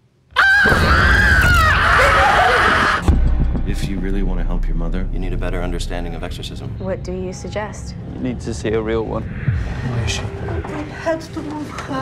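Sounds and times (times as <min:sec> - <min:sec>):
deep low rumble: 0:03.1 - 0:12.0.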